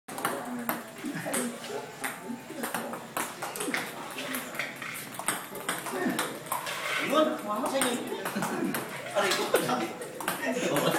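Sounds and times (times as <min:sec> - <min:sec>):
table tennis balls clicking: 0:00.1 - 0:10.9.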